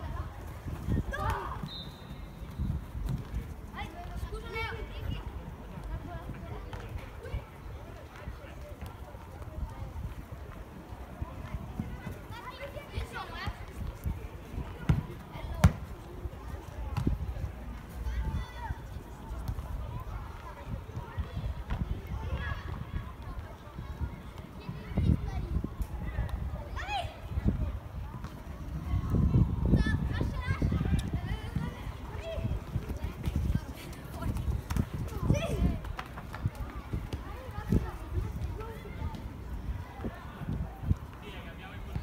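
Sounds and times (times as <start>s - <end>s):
ball being kicked: 14.8s - 15.9s.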